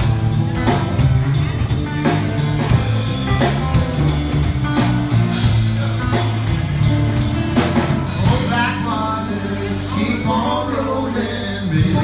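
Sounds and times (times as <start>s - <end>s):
drum kit steady beat: 0.0s - 10.8s
electric bass guitar: 0.0s - 12.0s.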